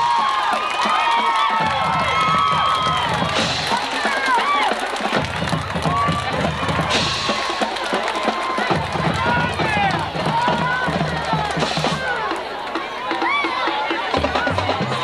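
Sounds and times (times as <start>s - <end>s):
marching band playing: 0.0s - 15.0s
spectators shouting and cheering: 0.0s - 15.0s.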